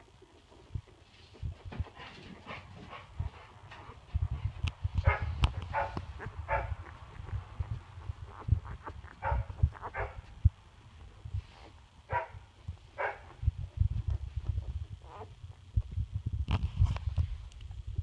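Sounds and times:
rustling: 0:00.0 - 0:18.0
soft low bumps: 0:00.6 - 0:18.0
puppies squeaking and whimpering: 0:05.1 - 0:11.8, 0:14.0 - 0:15.9.

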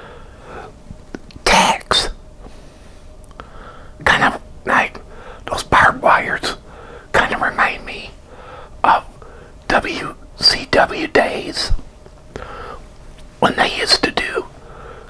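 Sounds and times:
man whispering: 0:01.4 - 0:02.2, 0:04.0 - 0:08.2, 0:08.8 - 0:11.8, 0:13.4 - 0:14.6.

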